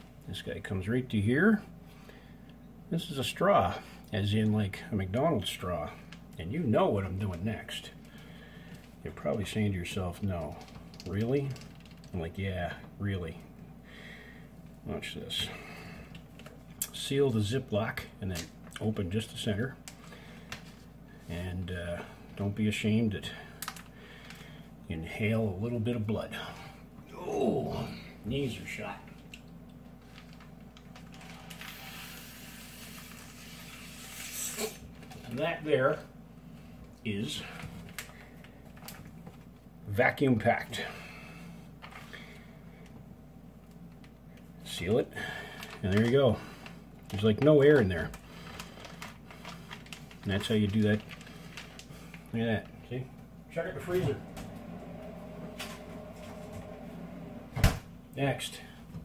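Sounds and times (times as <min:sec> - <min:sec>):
low mechanical hum: 0:00.0 - 0:59.0
air sucked through a straw: 0:31.7 - 0:34.8.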